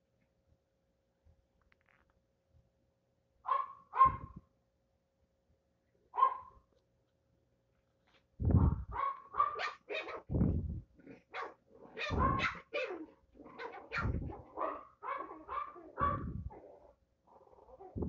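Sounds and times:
small dogs barking: 3.5 - 4.4, 6.2 - 6.6, 8.6 - 10.3, 11.1 - 18.0.

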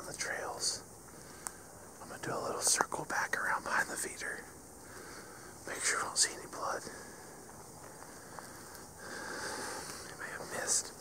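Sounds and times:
person whispering: 0.0 - 0.8, 2.0 - 4.5, 5.6 - 7.0, 10.1 - 11.0
close breathing: 1.1 - 1.8, 4.8 - 5.6, 6.8 - 11.0.

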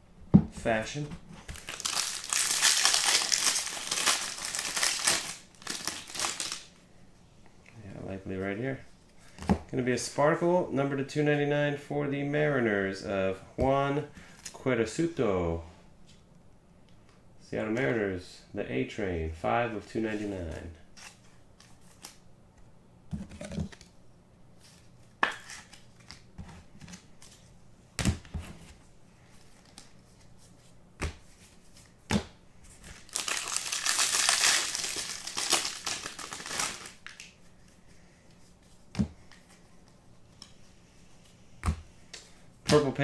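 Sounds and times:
wrapper crinkling and tearing: 1.5 - 6.7, 32.9 - 37.3.

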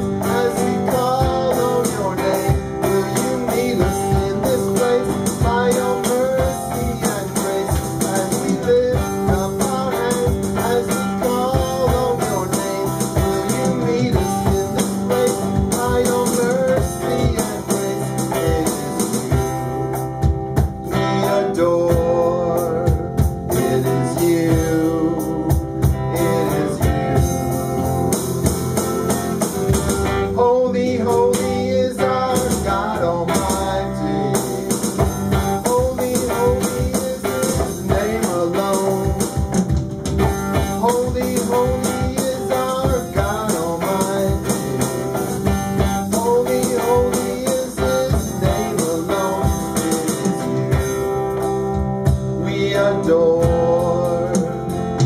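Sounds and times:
person singing: 0.0 - 20.0, 20.7 - 29.5, 30.2 - 39.6, 40.4 - 51.3, 52.1 - 55.0
band playing worship song: 0.0 - 55.0
drum kit: 0.0 - 55.0
guitars: 0.0 - 55.0
keyboard: 0.0 - 55.0.

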